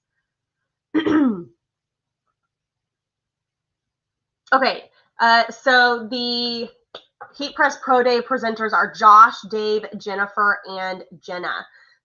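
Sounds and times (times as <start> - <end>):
woman clearing her throat: 1.0 - 1.6.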